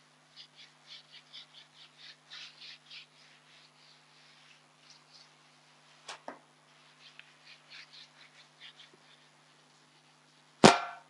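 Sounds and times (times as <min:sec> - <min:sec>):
eraser scrubbing on a whiteboard: 0:00.0 - 0:10.5.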